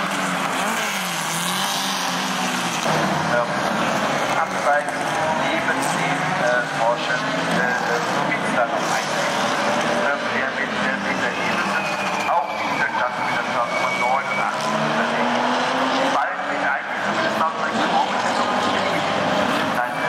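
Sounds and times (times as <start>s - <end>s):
race car engines passing: 0.0s - 20.0s
people talking: 2.9s - 20.0s.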